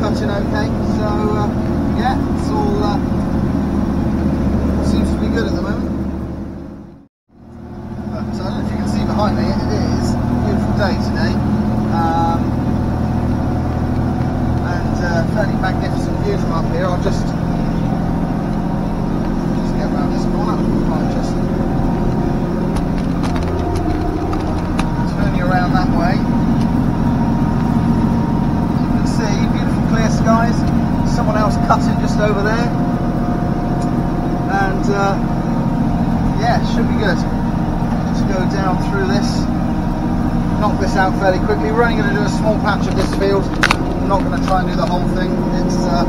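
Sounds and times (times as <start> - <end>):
mower running: 0.0 - 46.0
tractor engine running under load: 0.0 - 46.0.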